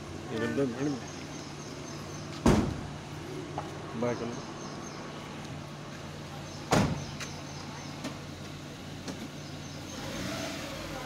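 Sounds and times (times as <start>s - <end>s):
engine idling hum: 0.0s - 11.0s
sliding van door slamming: 2.4s - 2.9s.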